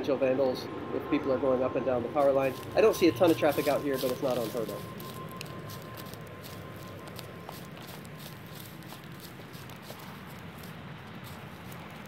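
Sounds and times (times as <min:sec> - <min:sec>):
footsteps in dry leaves: 0:02.2 - 0:12.0.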